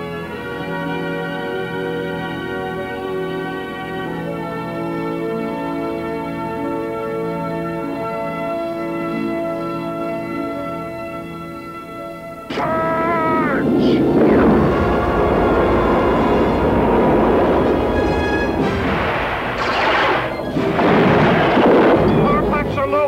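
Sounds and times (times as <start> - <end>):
orchestral music: 0.0 - 23.0
spaceship engine rumble: 12.5 - 19.6
explosions: 12.5 - 22.9
laser zaps: 19.5 - 22.1.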